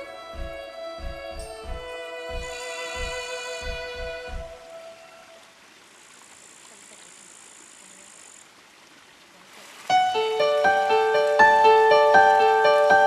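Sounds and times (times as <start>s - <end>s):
solo piano music: 9.9s - 13.0s.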